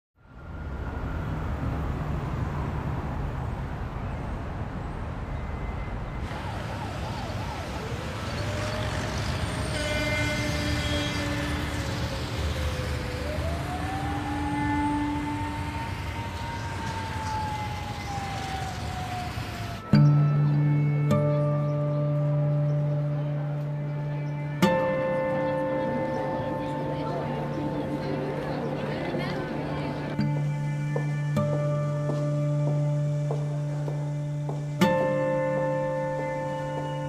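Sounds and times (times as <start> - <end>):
siren wailing: 0.2 - 3.3, 5.4 - 20.2
low traffic rumble: 0.2 - 37.0.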